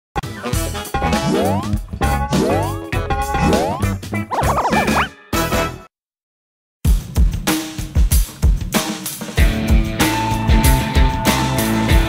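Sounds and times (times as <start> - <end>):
playful music jingle: 0.2 - 5.9.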